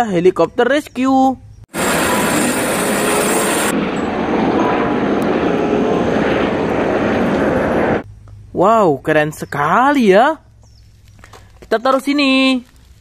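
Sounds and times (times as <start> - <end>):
helicopter engine and rotor: 1.7 - 8.0.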